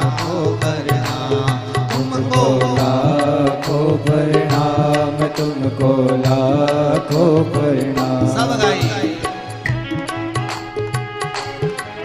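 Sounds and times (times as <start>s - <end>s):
drum beat: 0.0s - 11.6s.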